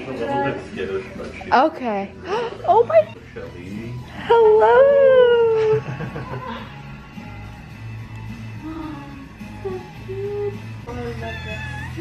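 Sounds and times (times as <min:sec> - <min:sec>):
background music: 0:00.0 - 0:12.0
cat meowing: 0:11.1 - 0:12.0.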